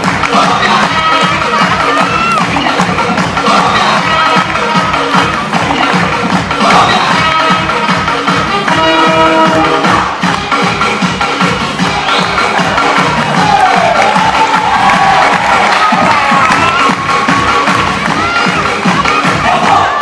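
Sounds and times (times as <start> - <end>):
backing music with steady beat: 0.0 - 20.0
children shouting: 1.6 - 2.5, 13.2 - 20.0
audience cheering: 12.1 - 18.7.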